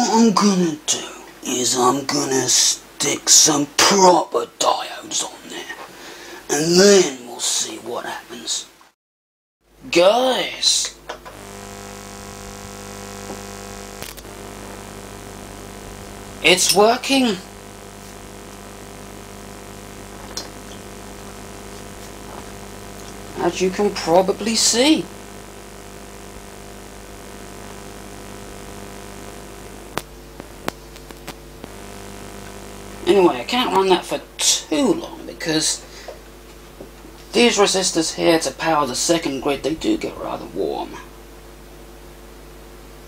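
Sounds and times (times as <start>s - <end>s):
low mains hum: 0.0s - 8.9s, 9.7s - 43.0s
tesla coil electrical buzz: 9.8s - 43.0s.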